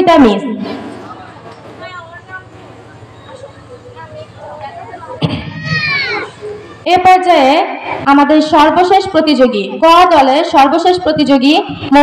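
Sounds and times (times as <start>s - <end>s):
faint crowd noise: 0.0s - 12.0s
child crying out: 5.3s - 6.3s.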